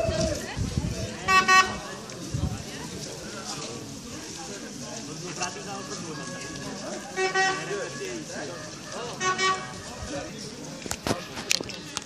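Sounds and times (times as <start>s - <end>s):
crowd murmuring: 0.0s - 12.0s
horn toot: 1.2s - 1.8s, 5.7s - 10.0s.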